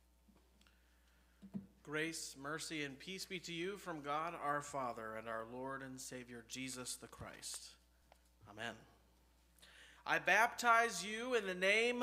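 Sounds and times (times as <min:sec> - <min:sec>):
man speaking into a microphone: 0:01.8 - 0:09.1, 0:10.0 - 0:12.0.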